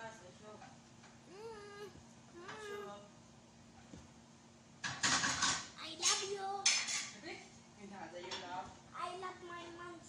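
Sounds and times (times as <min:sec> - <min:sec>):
dishes and cookware clattering: 0:04.8 - 0:07.2, 0:08.2 - 0:08.6.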